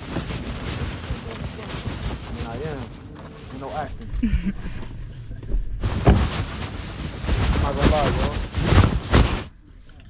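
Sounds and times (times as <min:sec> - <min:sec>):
person laughing: 0:04.1 - 0:04.9.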